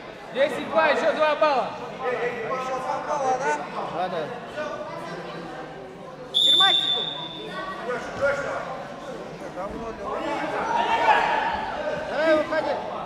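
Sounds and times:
crowd voices and shouts: 0.0s - 13.0s
referee's whistle blast: 6.4s - 7.5s.

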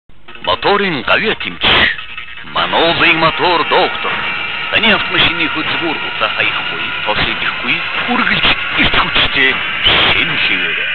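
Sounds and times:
announcer voice-over: 0.5s - 10.9s.

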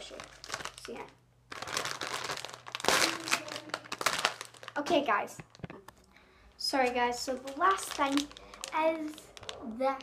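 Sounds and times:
plastic bag crinkling: 0.0s - 6.0s, 6.7s - 10.0s.

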